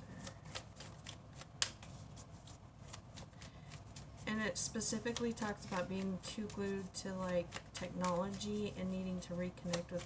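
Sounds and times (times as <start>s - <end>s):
cards being shuffled: 0.0s - 8.8s, 9.6s - 10.0s.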